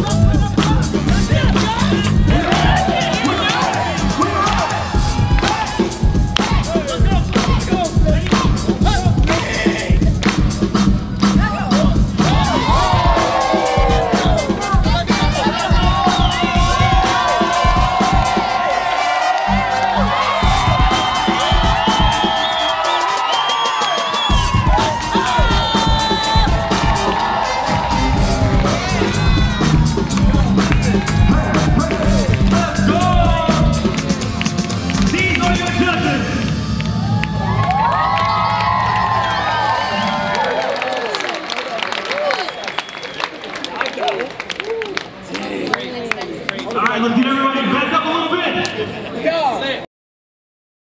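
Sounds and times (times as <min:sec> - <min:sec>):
breakbeat dance music: 0:00.0 - 0:40.3
crowd cheering and shouting: 0:00.0 - 0:46.0.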